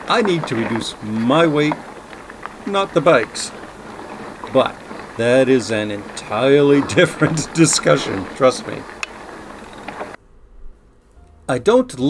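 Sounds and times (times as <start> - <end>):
wind and tyres rushing hiss: 0.0 - 10.2.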